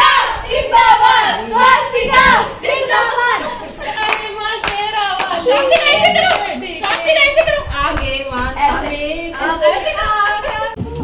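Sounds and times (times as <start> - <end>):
girls and women talking excitedly: 0.0 - 10.4.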